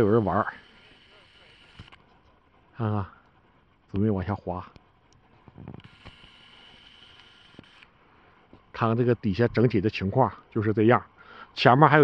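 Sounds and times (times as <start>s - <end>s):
camera zoom motor whine: 0.0s - 2.7s, 4.8s - 8.0s.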